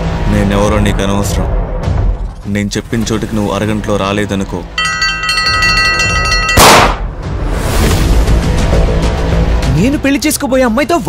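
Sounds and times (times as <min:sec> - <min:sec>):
background music: 0:00.0 - 0:11.0
metal plate bell struck with hammer: 0:04.8 - 0:07.0.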